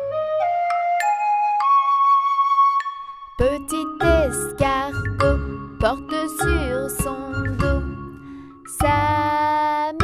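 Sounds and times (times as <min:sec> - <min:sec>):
flute-like jingle: 0:00.0 - 0:08.0.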